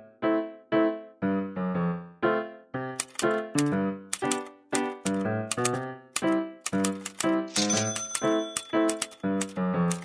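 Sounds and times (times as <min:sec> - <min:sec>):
keyboard background music: 0:00.0 - 0:10.0
typewriter-like clicks: 0:03.0 - 0:10.0.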